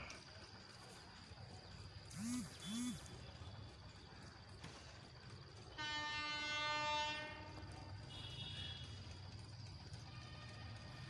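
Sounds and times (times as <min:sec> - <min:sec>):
short rising and falling calls: 0:02.1 - 0:03.1
train rumbling at speed: 0:05.4 - 0:08.1
locomotive horn blast: 0:05.7 - 0:08.9.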